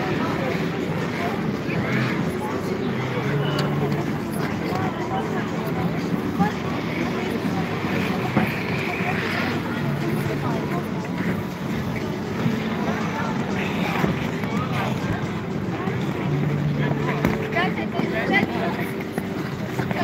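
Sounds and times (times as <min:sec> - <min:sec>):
skaters chattering: 0:00.0 - 0:20.0.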